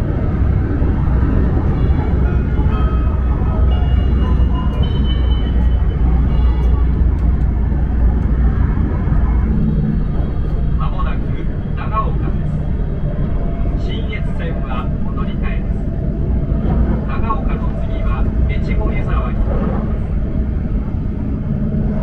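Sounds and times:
train running low rumble: 0.0s - 22.0s
public-address announcement: 10.2s - 20.2s.

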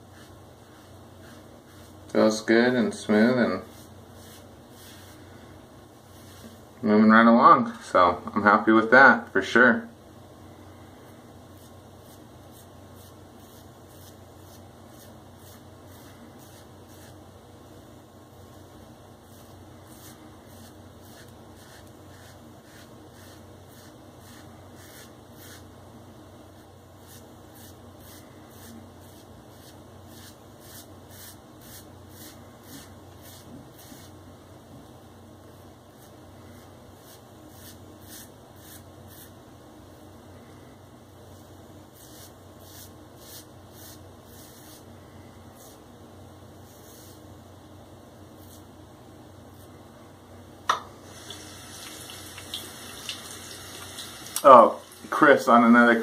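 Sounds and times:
razor scraping stubble: 11.6s - 17.2s, 19.3s - 25.6s, 27.0s - 34.1s, 37.0s - 39.3s, 42.0s - 44.8s.

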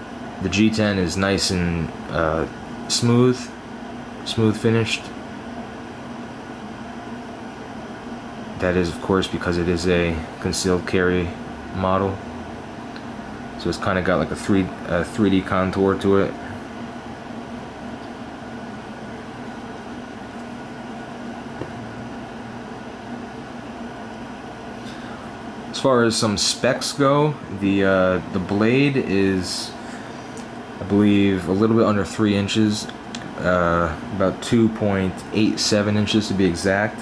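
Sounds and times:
mechanical room hum: 0.0s - 37.0s.

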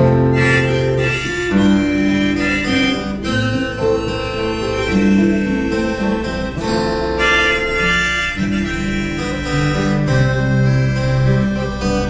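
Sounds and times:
acoustic guitars: 0.0s - 12.0s
harmonica playing: 0.0s - 12.0s.

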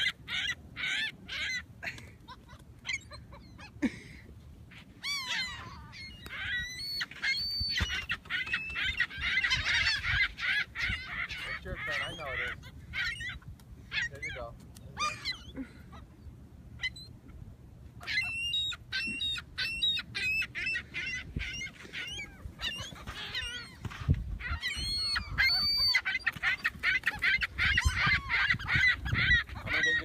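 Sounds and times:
gulls squawking: 0.0s - 17.2s, 18.0s - 30.0s.

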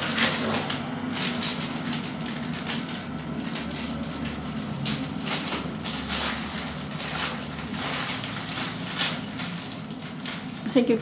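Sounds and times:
paper rustling and crinkling: 0.0s - 11.0s.

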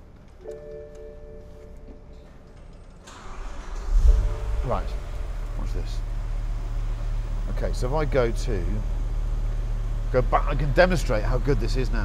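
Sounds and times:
car engine cranking and idling: 0.0s - 12.0s.

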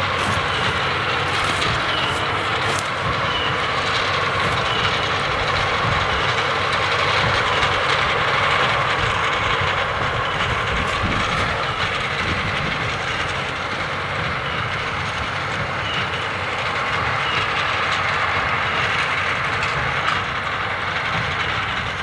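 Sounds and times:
baler mechanical clatter: 0.0s - 22.0s
tractor engine drone: 0.0s - 22.0s.

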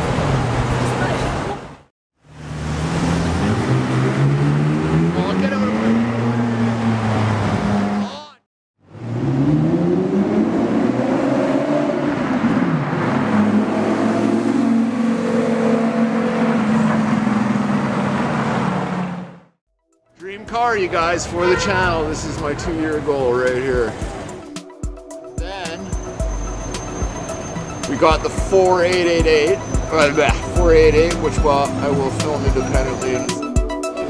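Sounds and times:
car engines accelerating hard: 0.0s - 1.7s, 2.3s - 8.2s, 8.8s - 19.5s, 20.8s - 24.6s, 25.2s - 34.0s.

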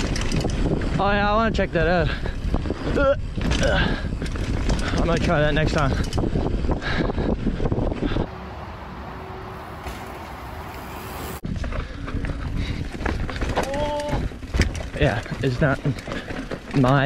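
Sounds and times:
bike knocking and rattling: 0.0s - 8.2s, 9.8s - 17.0s
wind on microphone: 0.0s - 8.4s
bike tyre rumble: 0.0s - 17.0s.

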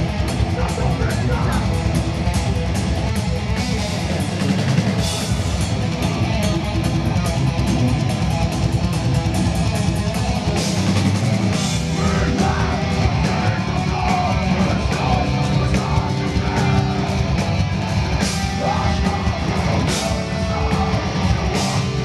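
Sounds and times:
fast dense drumming: 0.0s - 22.0s
heavy distorted electric guitars: 0.0s - 22.0s.

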